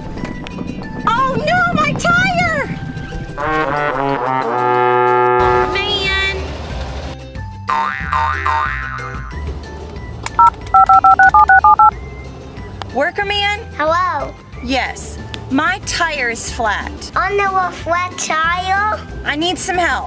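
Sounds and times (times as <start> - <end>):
background music: 0.0 - 20.0
two-tone phone keypad beeps: 10.4 - 11.9.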